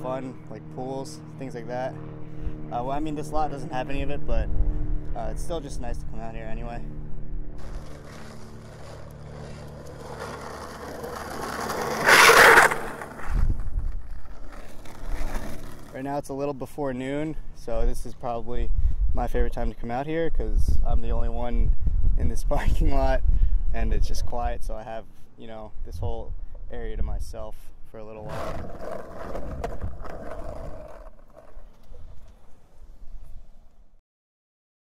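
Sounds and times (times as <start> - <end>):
skateboard scraping: 7.6 - 16.2, 28.2 - 33.7
skateboard wheels rolling on asphalt: 7.6 - 16.8, 28.2 - 33.9.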